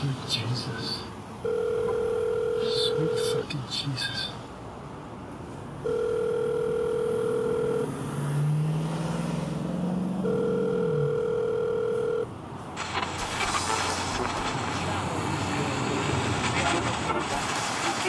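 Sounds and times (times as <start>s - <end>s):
car driving in traffic: 0.0s - 18.0s
telephone ringing tone: 1.4s - 3.5s, 5.8s - 8.0s, 10.2s - 12.3s.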